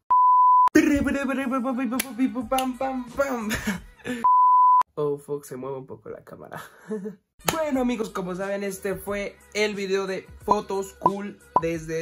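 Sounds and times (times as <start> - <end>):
electronic beep tone: 4.2 - 4.8.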